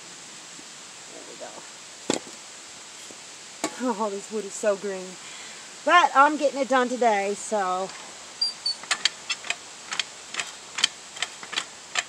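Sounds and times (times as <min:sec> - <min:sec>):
log splitter pumping clicks: 0:08.4 - 0:12.0.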